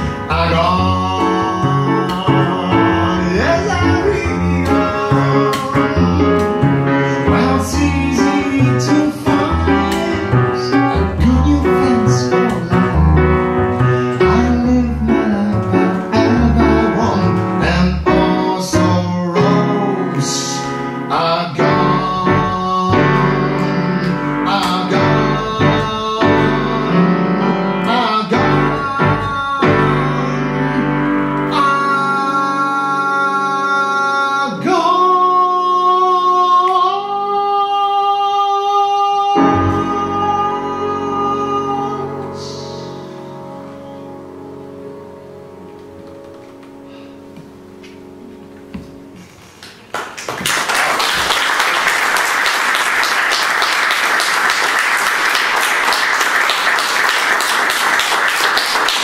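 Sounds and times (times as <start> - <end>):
man singing a high note: 0.0 - 13.2, 13.9 - 43.3
plucked double bass: 0.0 - 31.5
piano chords and runs: 0.0 - 59.0.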